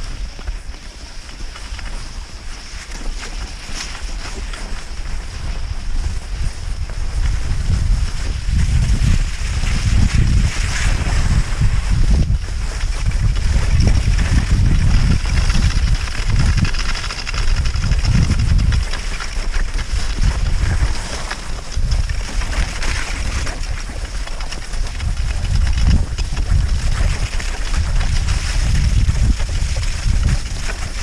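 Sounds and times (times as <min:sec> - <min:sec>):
skis sliding on snow: 0:00.0 - 0:31.0
wind buffeting microphone: 0:00.0 - 0:31.0.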